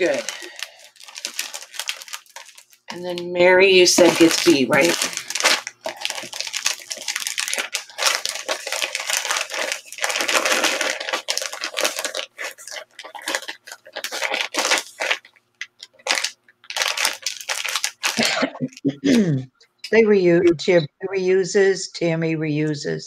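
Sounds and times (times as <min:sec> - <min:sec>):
plastic bags crinkling: 0:00.0 - 0:19.2.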